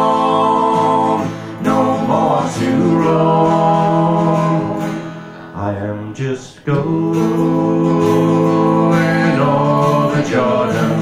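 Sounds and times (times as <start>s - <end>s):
acoustic guitar chord: 0.0s - 11.0s.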